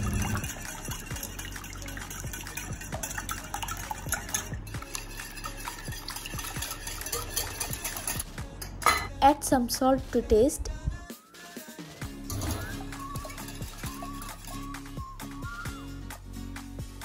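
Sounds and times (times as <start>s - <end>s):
egg mixture sloshing: 0.0s - 8.4s, 12.0s - 15.7s
spoon clinking on bowl: 0.1s - 9.2s, 12.3s - 14.8s.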